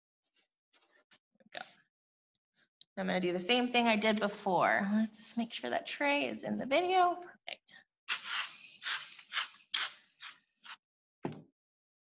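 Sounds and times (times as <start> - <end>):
aerosol can spraying foam: 8.1 - 10.8.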